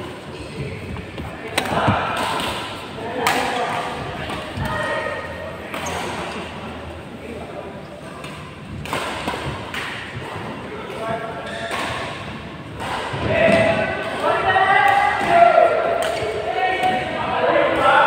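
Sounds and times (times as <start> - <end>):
rackets hitting shuttlecock: 1.5 - 4.8, 8.2 - 17.1.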